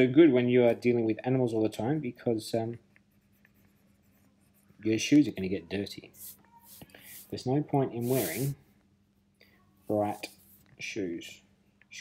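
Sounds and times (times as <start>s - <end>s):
person speaking: 3.5s - 8.6s, 9.8s - 11.3s.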